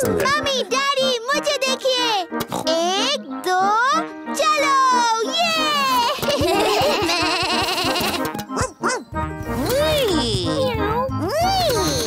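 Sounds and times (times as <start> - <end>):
cheerful children's music with beat: 0.0 - 12.0.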